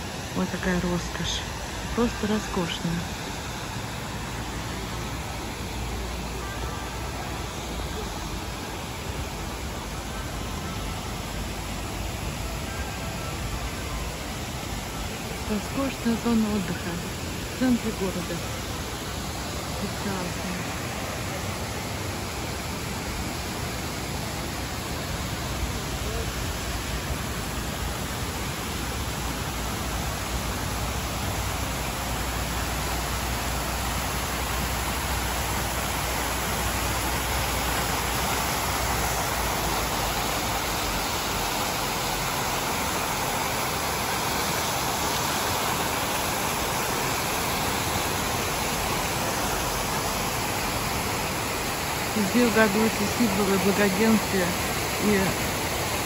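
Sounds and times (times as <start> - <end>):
fountain water splashing: 0.0 - 56.0.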